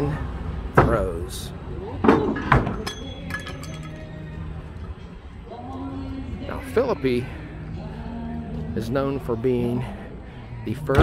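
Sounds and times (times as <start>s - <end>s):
low outdoor hum: 0.0s - 11.0s.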